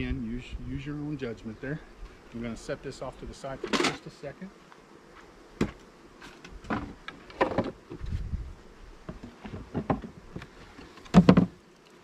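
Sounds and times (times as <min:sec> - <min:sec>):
bees buzzing faintly: 0:00.0 - 0:12.0
wooden boxes knocking and clattering: 0:06.6 - 0:07.8, 0:09.1 - 0:10.2, 0:11.1 - 0:11.6.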